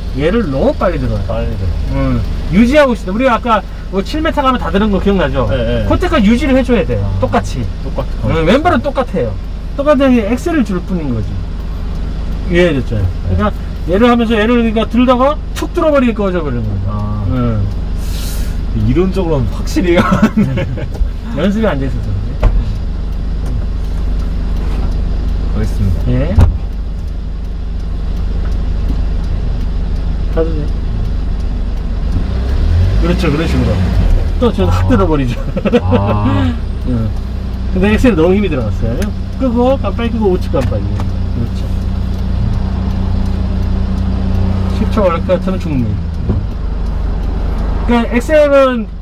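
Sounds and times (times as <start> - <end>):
truck engine idling: 0.0 - 49.0.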